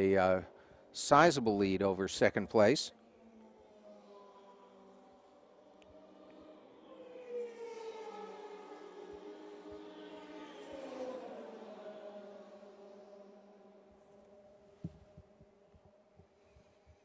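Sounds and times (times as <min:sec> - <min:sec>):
race car engine accelerating: 0:00.0 - 0:16.8.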